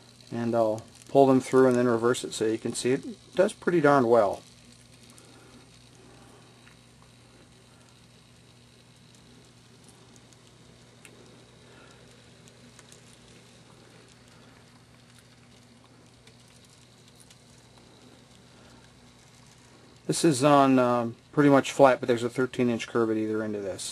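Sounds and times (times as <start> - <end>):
model train wheels clicking: 0.0 - 23.9
steady low hum: 0.0 - 23.9.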